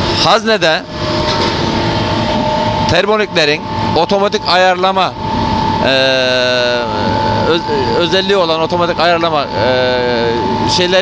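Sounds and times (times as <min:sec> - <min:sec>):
boiler equipment drone: 0:00.0 - 0:11.0
constant high whine: 0:00.0 - 0:11.0.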